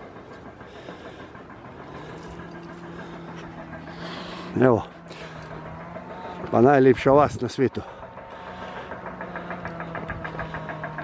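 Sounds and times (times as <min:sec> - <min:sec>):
engine idling with fast ticking: 0:00.0 - 0:11.0.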